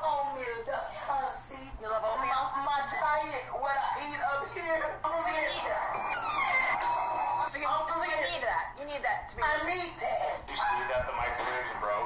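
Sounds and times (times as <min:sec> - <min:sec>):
electronic chime: 0:06.0 - 0:07.5.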